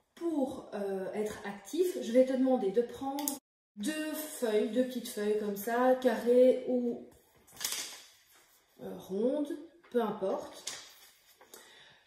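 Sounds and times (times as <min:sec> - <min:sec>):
paper rustling on tabletop: 0:07.2 - 0:08.8, 0:10.5 - 0:11.5.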